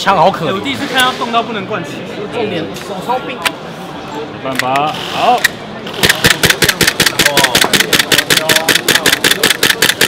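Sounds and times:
airsoft pistol rapid fire: 5.9s - 10.0s.

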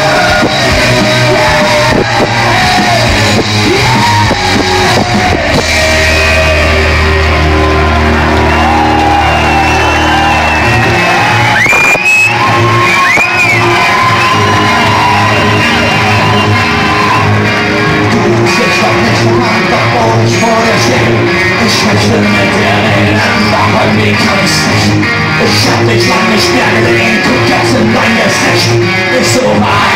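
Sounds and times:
crowd shouting: 0.0s - 23.8s, 29.1s - 29.9s
live rock band playing: 0.0s - 29.9s.

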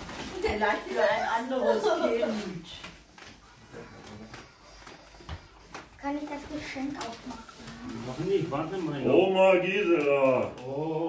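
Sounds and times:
rustling sack and gifts: 0.0s - 10.8s.

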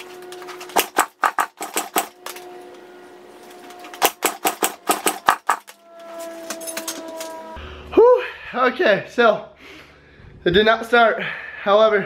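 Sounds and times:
dirt bike engine turning over: 0.0s - 2.6s, 3.6s - 7.5s.

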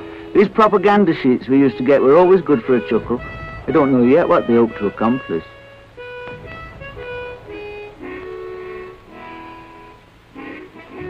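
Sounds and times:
slow melody of held notes: 0.0s - 11.0s.

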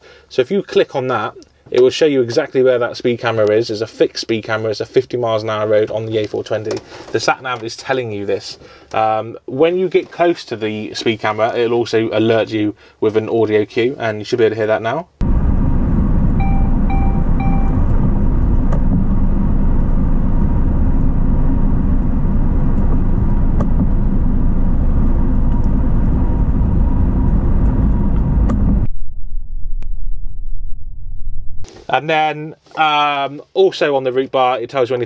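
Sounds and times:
lorry cab driving rumble: 15.2s - 28.9s
sat nav electronic beeps: 16.4s - 18.1s.

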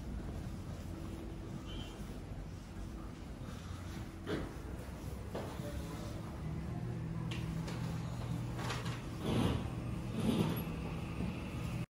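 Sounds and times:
airport terminal mechanical hum: 0.0s - 11.9s.

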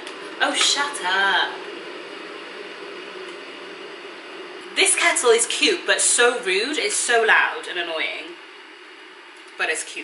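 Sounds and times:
electric kettle hissing: 0.0s - 10.0s.

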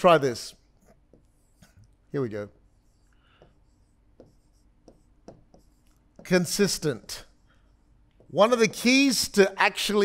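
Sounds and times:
pen strokes on touchscreen: 0.8s - 2.0s, 2.6s - 8.3s.

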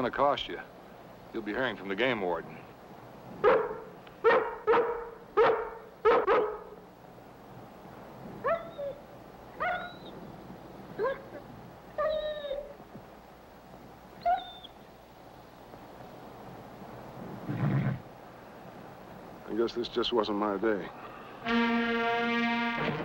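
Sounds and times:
dog yipping: 3.4s - 6.7s, 8.4s - 9.0s, 9.6s - 10.2s, 11.0s - 11.4s, 12.0s - 12.8s, 14.2s - 14.8s
dog barking: 3.4s - 6.8s, 8.4s - 9.0s, 9.6s - 10.1s, 11.0s - 11.4s.

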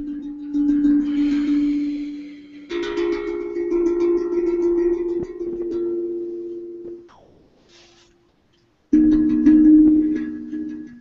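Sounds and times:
handpan ringing notes: 0.0s - 7.4s, 8.9s - 11.0s.

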